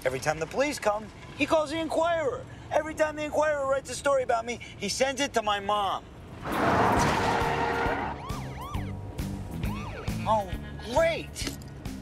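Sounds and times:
car speeding past: 0:06.4 - 0:10.0
police siren yelping: 0:06.9 - 0:10.3.

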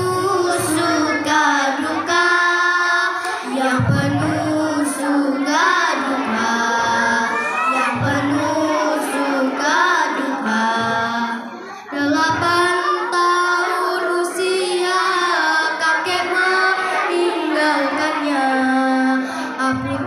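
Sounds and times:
girl singing into microphone: 0:00.0 - 0:20.0.

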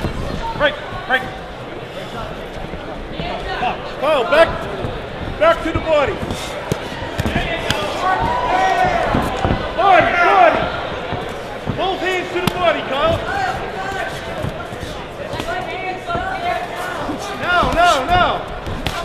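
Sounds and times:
feet on boxing canvas: 0:00.0 - 0:19.0.

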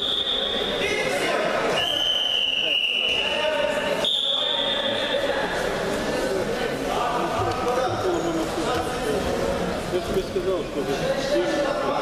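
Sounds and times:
crowd shouting and talking: 0:00.0 - 0:12.0
long high whistles: 0:01.8 - 0:03.4.

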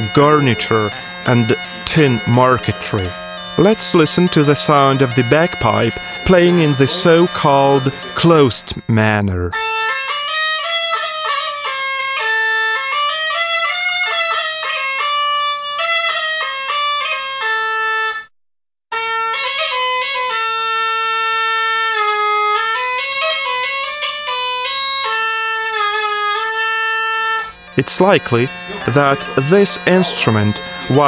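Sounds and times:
bagpipe playing a tune: 0:00.0 - 0:18.3, 0:18.9 - 0:31.0.

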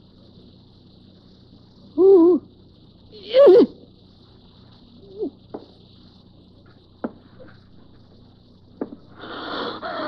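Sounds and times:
cassette hum and hiss: 0:00.0 - 0:10.0.

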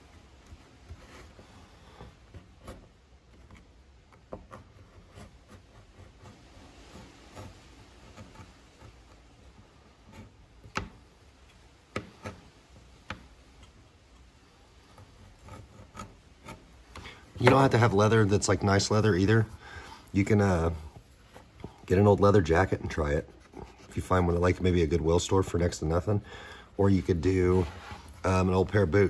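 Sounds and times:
blade scraping through leather: 0:04.5 - 0:10.5, 0:14.7 - 0:24.4.

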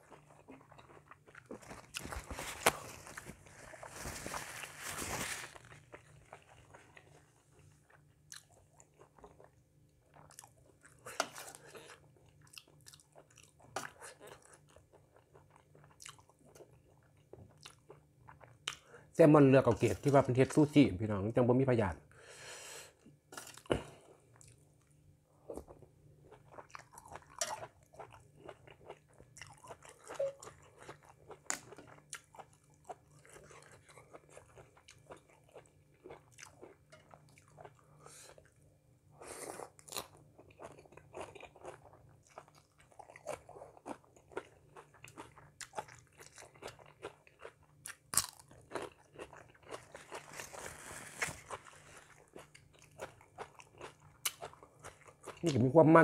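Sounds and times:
chewing and crunching: 0:00.0 - 0:18.9, 0:23.4 - 0:38.7, 0:39.4 - 0:55.8.

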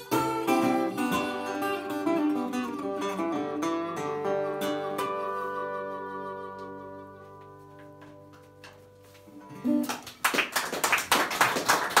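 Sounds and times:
resonator guitar and harmonica blues: 0:00.0 - 0:09.8
audience applause: 0:09.8 - 0:12.0.

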